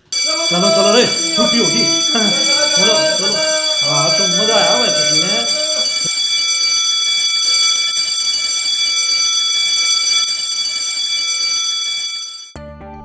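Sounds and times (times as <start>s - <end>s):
electric school bell buzzing: 0.0s - 12.6s.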